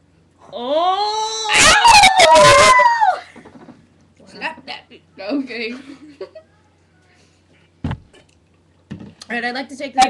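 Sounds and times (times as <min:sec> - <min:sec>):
girl howling: 0:00.6 - 0:03.3.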